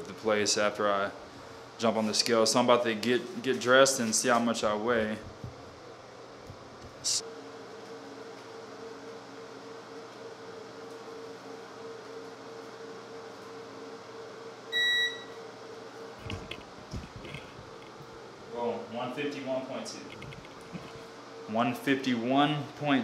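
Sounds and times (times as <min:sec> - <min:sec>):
steady hum: 0:00.0 - 0:23.0
digital scale beep: 0:14.7 - 0:15.4.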